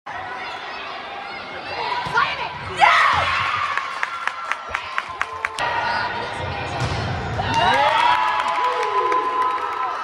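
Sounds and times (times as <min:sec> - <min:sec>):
crowd cheering and shouting: 0:00.1 - 0:10.0.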